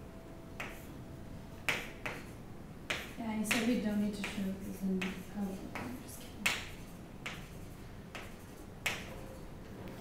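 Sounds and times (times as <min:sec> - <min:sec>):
chalk tapping on chalkboard: 0:00.6 - 0:00.9, 0:01.6 - 0:09.2.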